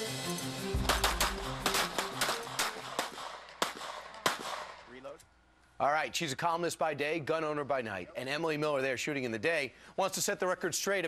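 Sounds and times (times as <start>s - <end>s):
news theme music: 0.0s - 3.6s
gunshots: 0.8s - 4.9s.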